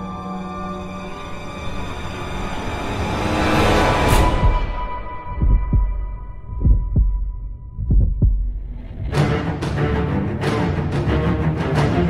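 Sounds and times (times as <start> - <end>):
heartbeat thumps: 4.4 - 9.4.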